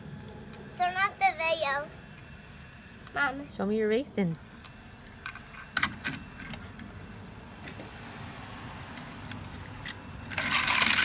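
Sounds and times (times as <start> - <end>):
toy cars clicking on track: 9.8 - 11.0
toy cars rattling down track: 10.3 - 11.0.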